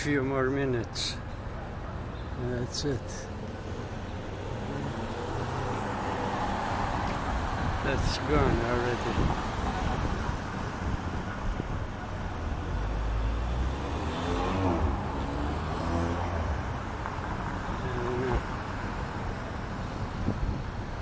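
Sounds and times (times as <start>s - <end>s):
passing cars hum: 1.2s - 21.0s
vehicle passing by: 13.3s - 16.8s.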